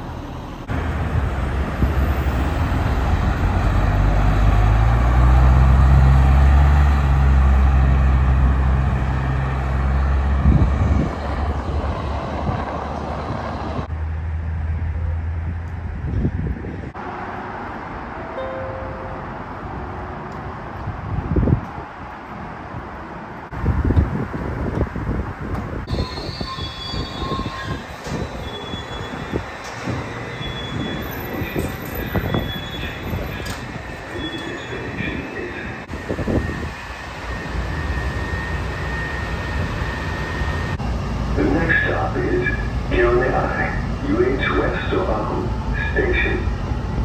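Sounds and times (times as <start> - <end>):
metro train running rumble: 0.0 - 47.0
announcement voice: 34.4 - 35.8, 41.3 - 46.6.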